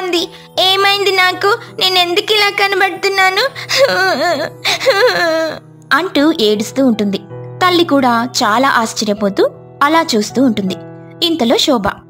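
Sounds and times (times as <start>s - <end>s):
soft background music: 0.0s - 12.0s
girl crying: 2.9s - 5.7s.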